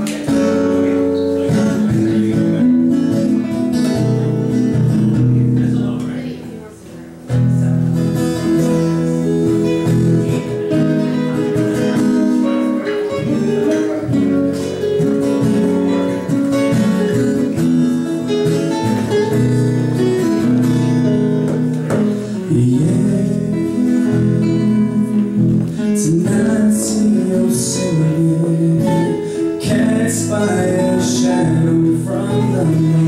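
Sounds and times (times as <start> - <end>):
nylon-string guitar melody: 0.0 - 33.0
steel-string acoustic guitar: 0.0 - 33.0.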